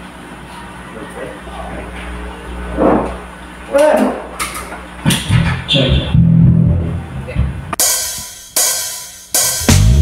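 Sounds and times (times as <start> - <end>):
electric bass and guitar note: 5.0 - 7.8, 9.5 - 10.0
cymbal crashes ringing: 7.8 - 10.0.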